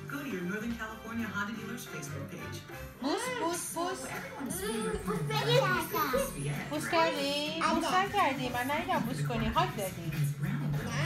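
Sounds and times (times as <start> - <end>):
young children talking and calling: 4.4 - 6.6.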